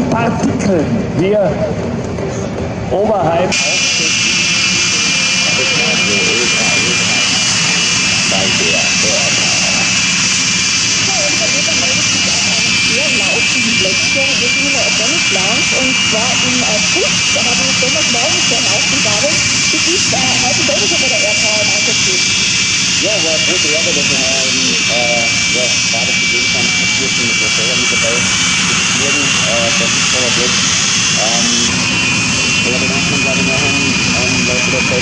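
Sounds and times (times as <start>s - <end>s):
jet engine whining: 0.0s - 35.0s.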